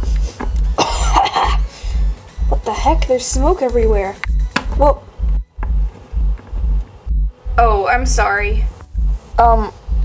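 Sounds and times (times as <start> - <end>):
music with thumping beat: 0.0 - 10.0
person coughing: 0.8 - 1.7.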